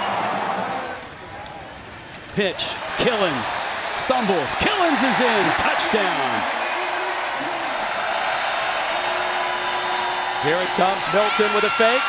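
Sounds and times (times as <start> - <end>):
stadium crowd roar: 0.0 - 12.0.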